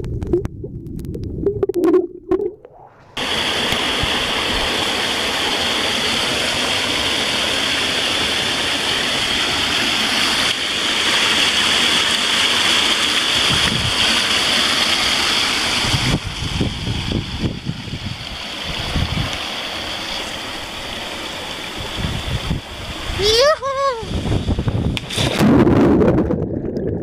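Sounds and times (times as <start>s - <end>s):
water gurgling: 0.0s - 27.0s
waterfall rushing into a pool: 3.2s - 25.4s.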